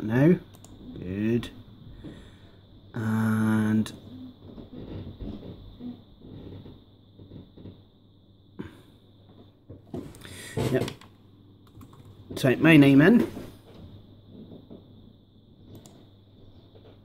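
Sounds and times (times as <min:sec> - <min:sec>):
faint high whine: 0:00.0 - 0:17.0
laptop keys clicking: 0:10.9 - 0:12.2.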